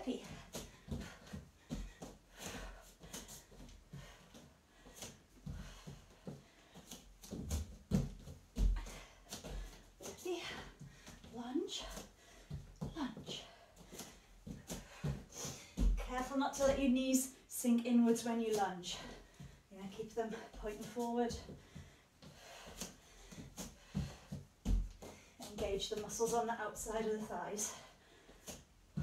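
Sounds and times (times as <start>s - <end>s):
feet and hands thudding on foam mat: 0.0s - 17.1s, 18.5s - 26.9s
hard breathing: 0.1s - 16.0s, 18.9s - 25.5s.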